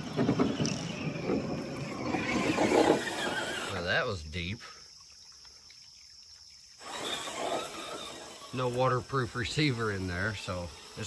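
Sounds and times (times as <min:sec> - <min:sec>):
tyres scrabbling over stones: 0:00.0 - 0:03.7, 0:06.8 - 0:11.0
rc truck motor: 0:00.0 - 0:03.8, 0:06.8 - 0:11.0.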